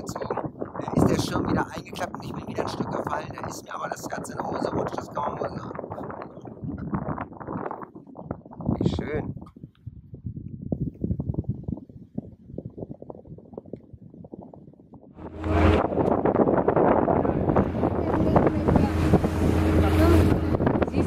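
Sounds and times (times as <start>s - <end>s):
wind buffeting microphone: 0.0s - 21.0s
motorboat engine running: 15.2s - 21.0s
rushing water: 15.2s - 21.0s.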